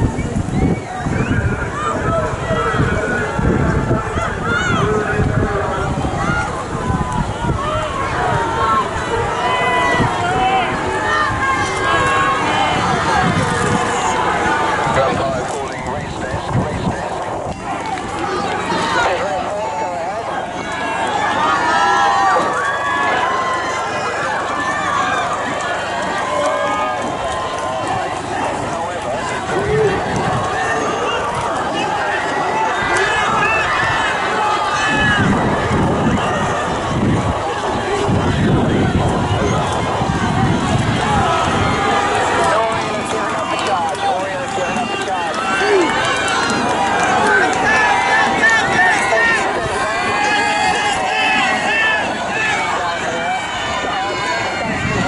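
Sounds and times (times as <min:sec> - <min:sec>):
crowd shouting and cheering: 0:00.0 - 0:55.0.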